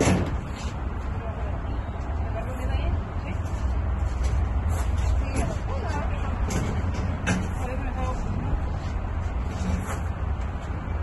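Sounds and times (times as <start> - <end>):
steady low rumble: 0.0 - 11.0
heavy equipment knocking and clanking: 6.4 - 7.6.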